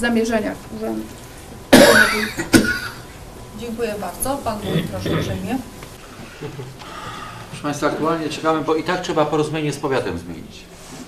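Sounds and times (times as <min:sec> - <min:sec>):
person coughing loudly: 0:01.7 - 0:03.0, 0:04.6 - 0:05.4.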